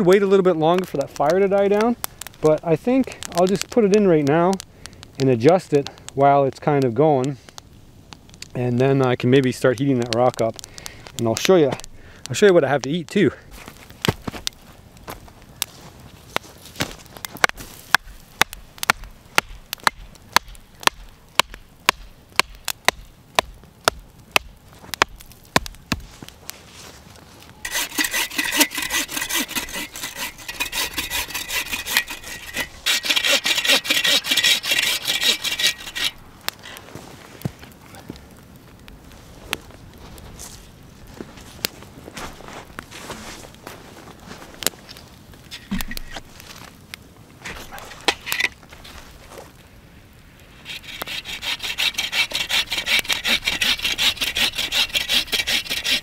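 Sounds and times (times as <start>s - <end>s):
hand saw cutting wood: 27.7s - 36.2s, 50.7s - 56.0s.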